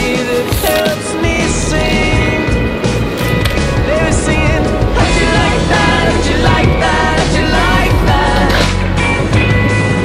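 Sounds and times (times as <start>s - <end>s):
song with vocals: 0.0s - 9.8s
skateboard wheels rolling on asphalt: 0.0s - 10.0s.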